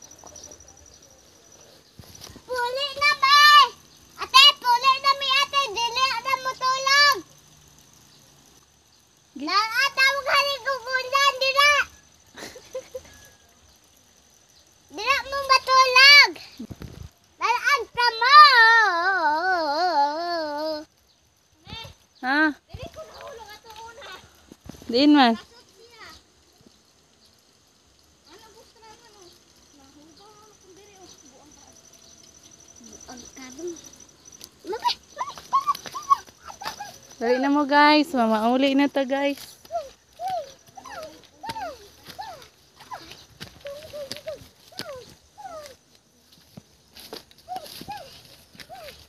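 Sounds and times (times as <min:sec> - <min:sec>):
girl singing: 0:17.7 - 0:20.9.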